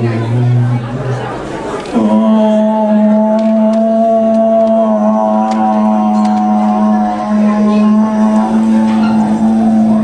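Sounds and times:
man holding vocal drone: 0:01.9 - 0:10.0.

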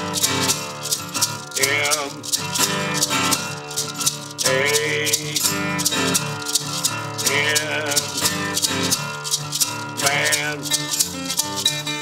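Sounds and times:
acoustic guitars strumming blues: 0:00.0 - 0:12.0
hand shaker: 0:00.0 - 0:12.0.

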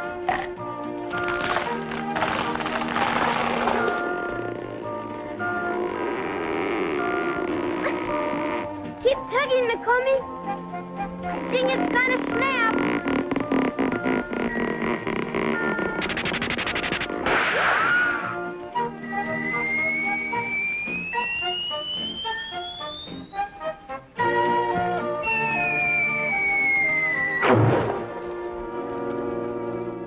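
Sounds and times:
cartoon orchestral music: 0:00.0 - 0:30.0
rising whistling glide: 0:17.8 - 0:27.6
falling whistle: 0:17.8 - 0:27.7.

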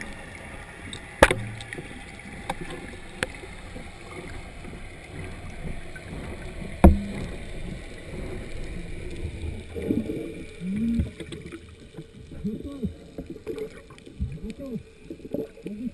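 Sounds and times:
low underwater rumble: 0:00.0 - 0:15.9
muffled groans from diver: 0:01.6 - 0:15.9.

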